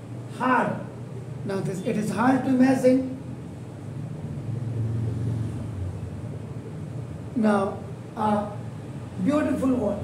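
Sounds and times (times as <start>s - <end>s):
passing vehicle rumble: 3.3s - 7.4s.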